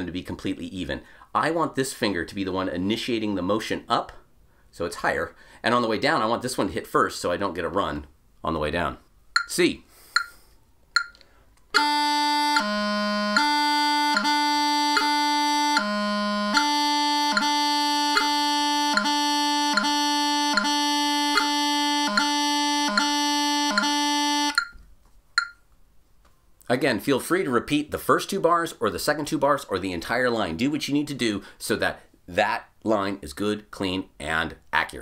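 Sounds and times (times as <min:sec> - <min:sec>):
metronome ticking: 0:09.3 - 0:10.4, 0:11.0 - 0:24.8, 0:25.4 - 0:25.7
bagpipe practice chanter: 0:11.7 - 0:24.6.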